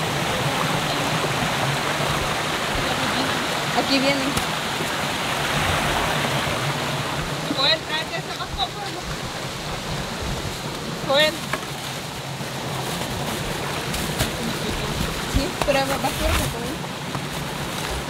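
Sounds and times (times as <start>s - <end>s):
stream running over rocks: 0.0s - 18.0s.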